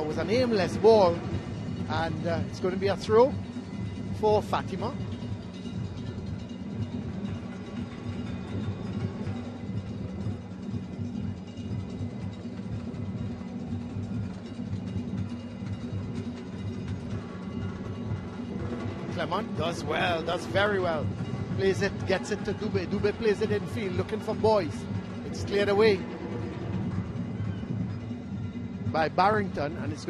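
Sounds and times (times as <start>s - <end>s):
music with low pulsing drums: 0.0s - 30.0s.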